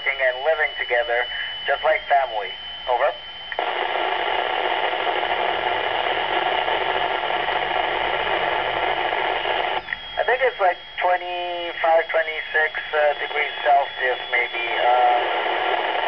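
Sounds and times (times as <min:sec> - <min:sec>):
radio static hiss: 0:00.0 - 0:16.0
radio voice: 0:00.0 - 0:16.0.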